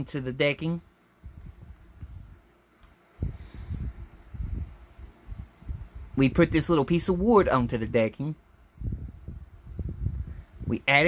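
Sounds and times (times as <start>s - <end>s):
faint click: 2.8s - 3.0s.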